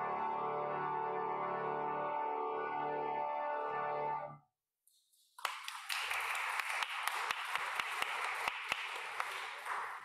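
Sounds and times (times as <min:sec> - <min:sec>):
congregation applauding: 0:05.3 - 0:10.0.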